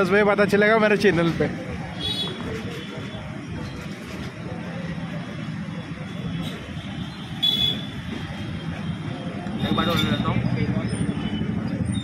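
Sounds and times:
road traffic: 0.0 - 12.0.

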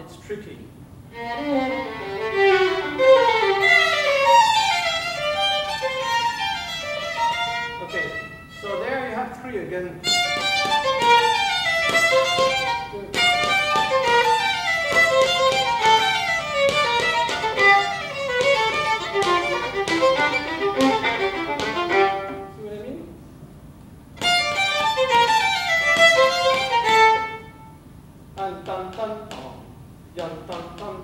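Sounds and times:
violins playing running notes: 1.1 - 9.1, 10.0 - 22.6, 24.2 - 27.8.

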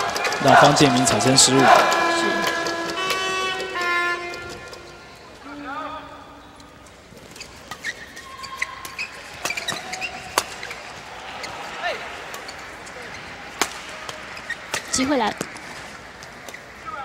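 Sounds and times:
shoes squeaking on court floor: 0.0 - 5.4, 6.4 - 17.0
murmur of hall: 0.0 - 17.0.

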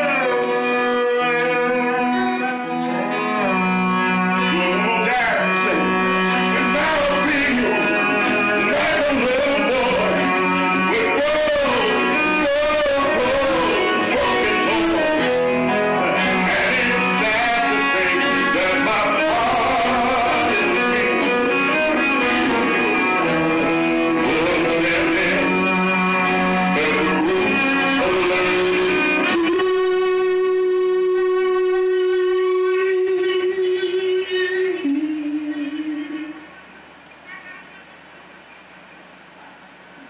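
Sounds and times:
live band with acoustic guitars: 0.0 - 36.6.

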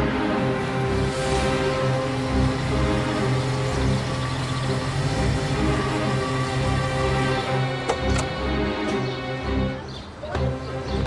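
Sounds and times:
car engine running at low speed: 1.2 - 7.5.

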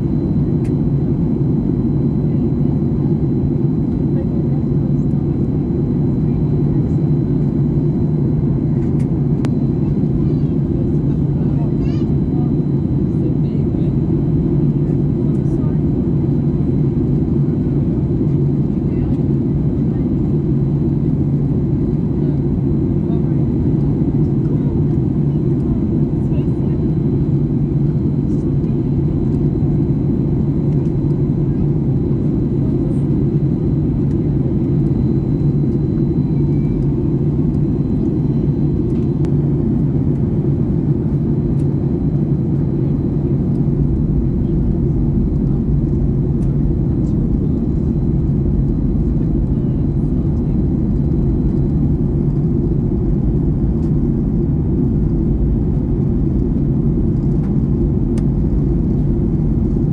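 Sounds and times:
jet engine cabin rumble: 0.0 - 59.9.

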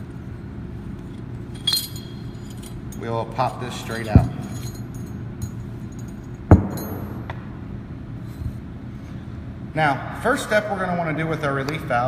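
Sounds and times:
low room hum: 0.0 - 12.0
metallic clink: 1.1 - 7.2.

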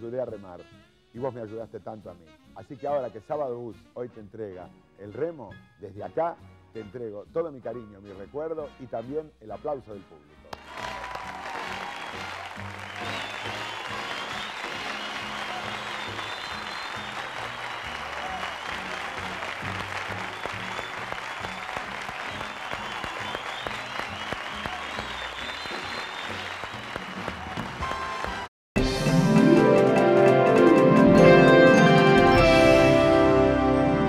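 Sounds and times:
music playing: 4.1 - 34.0
audience applauding: 10.5 - 28.5.

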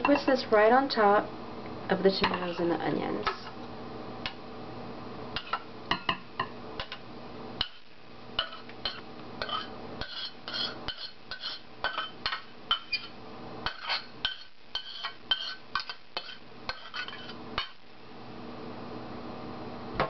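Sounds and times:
metal spoon scraping and clinking: 8.4 - 17.7.

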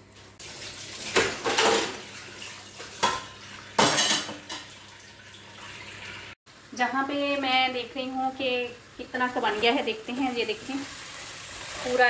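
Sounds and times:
tap water running: 0.0 - 6.4, 7.3 - 12.0
pan clattering against sink: 1.1 - 2.1, 2.8 - 4.8.

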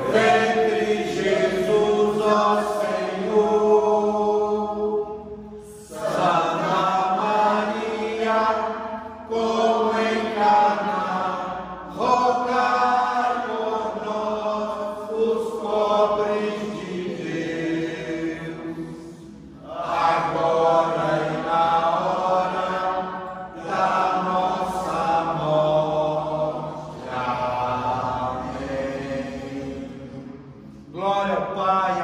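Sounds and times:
group of voices praying: 0.0 - 32.0.

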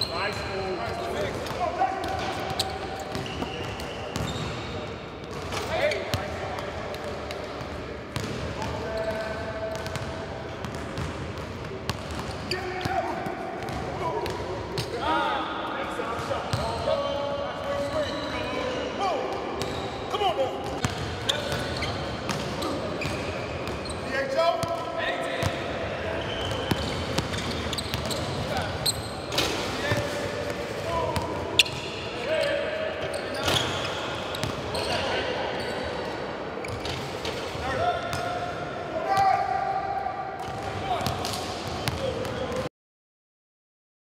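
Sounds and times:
sneakers squeaking: 0.0 - 15.1, 16.1 - 38.6, 40.4 - 42.6
background chatter in large hall: 0.0 - 42.7
basketballs bouncing on wood floor: 9.7 - 12.3.

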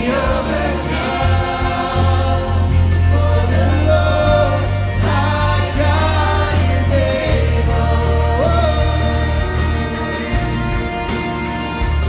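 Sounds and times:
choir singing: 0.0 - 12.0
strummed acoustic guitars: 0.0 - 12.0
sustained low bass: 0.0 - 12.0.

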